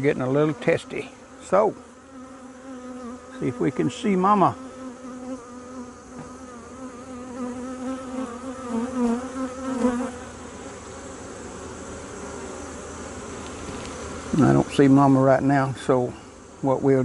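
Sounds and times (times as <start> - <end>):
honeybees buzzing: 0.0 - 17.0.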